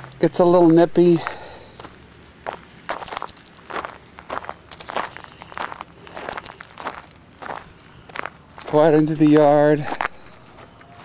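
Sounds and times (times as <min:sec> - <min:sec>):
footsteps crunching on gravel: 0:00.0 - 0:11.0.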